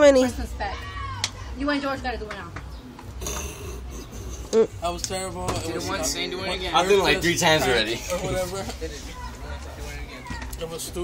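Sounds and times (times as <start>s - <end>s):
short vocal sound: 3.2s - 4.8s.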